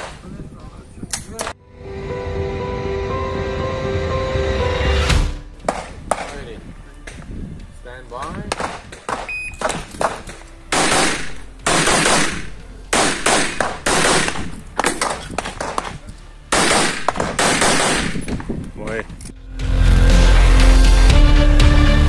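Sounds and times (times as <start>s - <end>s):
pistol shots with echo: 8.5s - 18.4s
shot timer beep: 9.3s - 9.6s.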